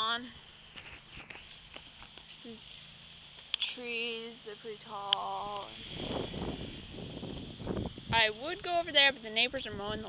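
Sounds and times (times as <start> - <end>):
wind buffeting microphone: 5.1 - 10.0.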